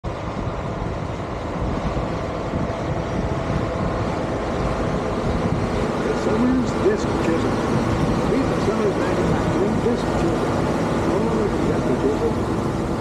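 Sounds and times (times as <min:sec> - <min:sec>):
wind rumble on microphone: 0:00.0 - 0:13.0.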